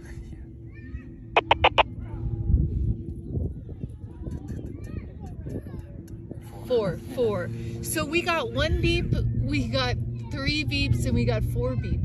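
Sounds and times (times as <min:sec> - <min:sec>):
handheld radio beeps: 0:01.4 - 0:01.8.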